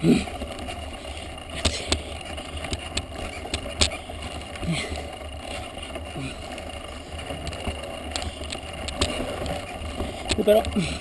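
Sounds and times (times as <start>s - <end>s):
bike rolling over gravel: 0.0s - 11.0s.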